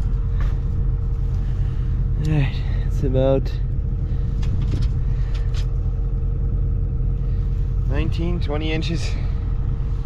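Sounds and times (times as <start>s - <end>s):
diesel tractor engine idling: 0.0s - 10.0s.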